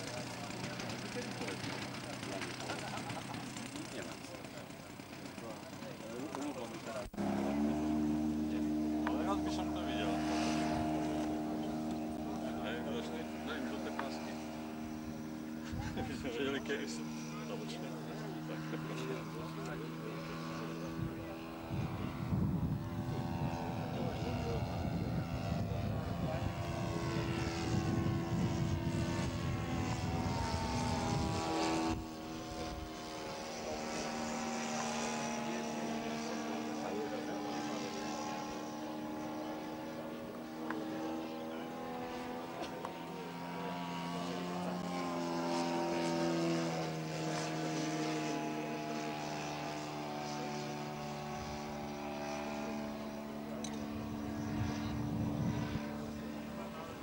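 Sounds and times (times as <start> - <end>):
model plane engine droning: 0.0 - 57.0.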